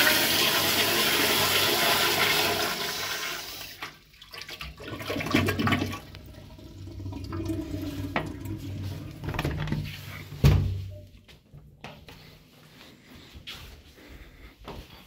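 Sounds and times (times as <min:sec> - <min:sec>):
toilet flushing: 0:00.0 - 0:10.6.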